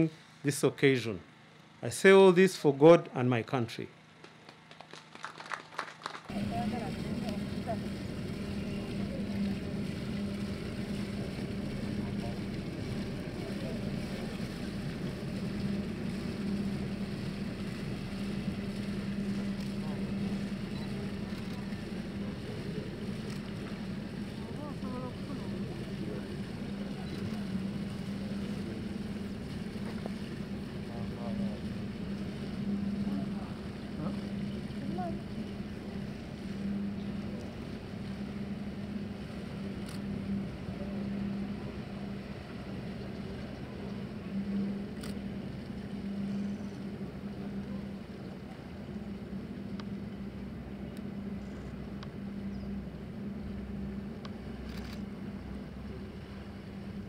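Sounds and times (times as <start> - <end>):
boat engines droning: 0.0 - 57.0
faint voices: 6.3 - 49.5.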